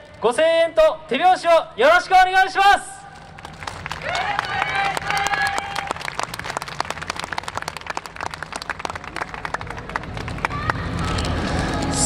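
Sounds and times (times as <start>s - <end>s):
audience applauding: 3.2s - 12.0s.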